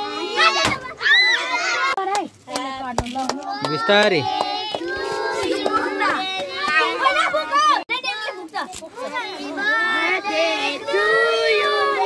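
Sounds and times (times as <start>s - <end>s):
young children chattering: 0.0s - 2.1s, 4.9s - 12.0s.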